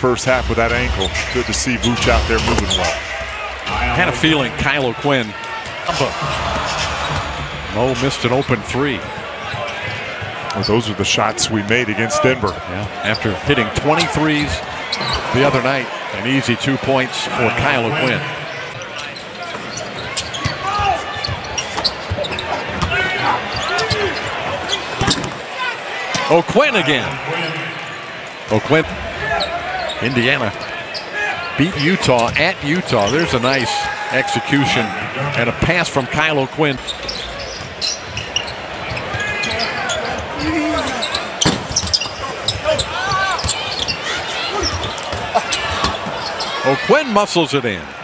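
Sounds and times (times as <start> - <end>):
arena crowd noise: 0.0 - 48.0
sneakers squeaking: 19.6 - 22.9, 23.5 - 25.3, 36.7 - 46.6.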